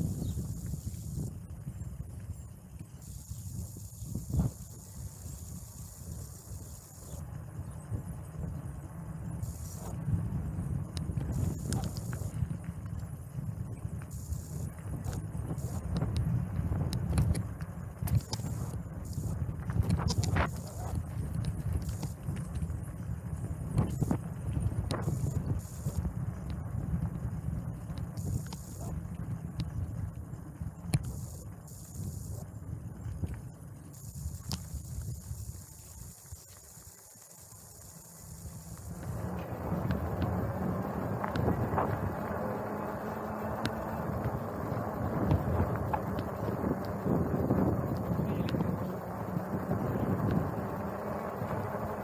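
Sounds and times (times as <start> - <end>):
bicycle rumbling over asphalt: 0.0 - 52.0.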